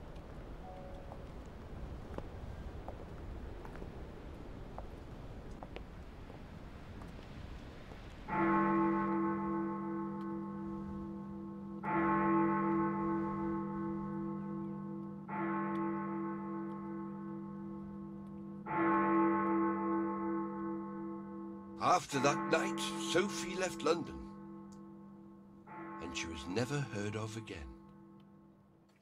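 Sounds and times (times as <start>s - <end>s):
tower clock bell striking: 8.3s - 28.2s.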